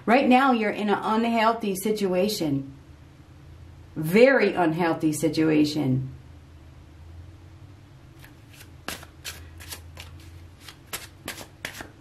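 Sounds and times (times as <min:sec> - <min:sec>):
faint low hum: 0:00.0 - 0:12.0
cards being shuffled: 0:08.2 - 0:12.0.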